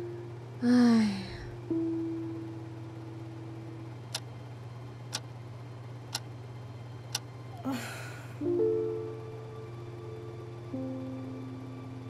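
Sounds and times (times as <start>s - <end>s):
low steady hum: 0.0s - 12.0s.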